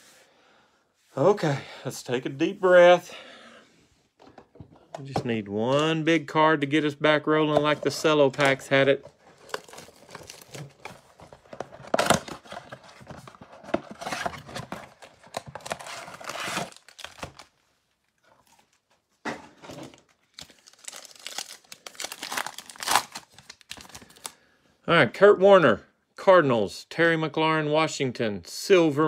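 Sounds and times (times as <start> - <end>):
foil packs crinkling: 7.8 - 17.5, 19.8 - 24.4
cardboard box tearing: 9.4 - 17.4.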